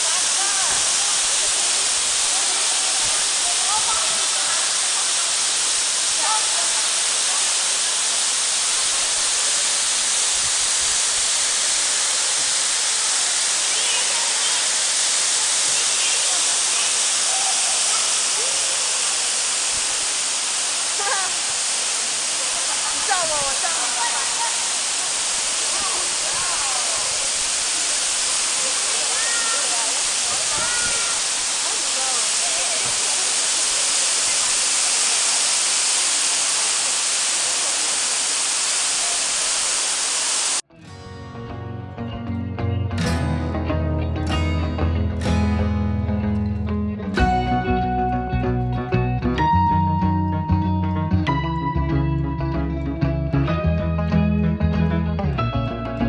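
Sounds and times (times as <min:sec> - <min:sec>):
indoor waterfall rushing: 0:00.0 - 0:40.7
faint voices talking: 0:22.2 - 0:35.3.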